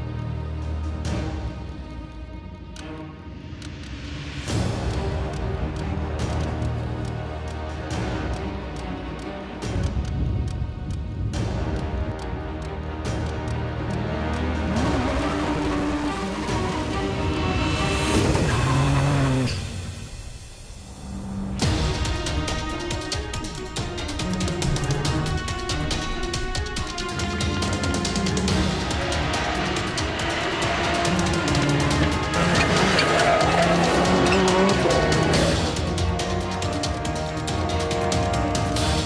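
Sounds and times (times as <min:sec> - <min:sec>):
background music: 0:00.0 - 0:39.0
racing car engines: 0:00.0 - 0:39.0.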